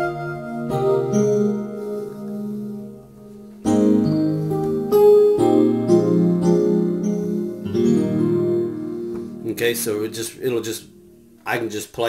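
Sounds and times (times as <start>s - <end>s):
electric piano chords: 0.0s - 11.7s.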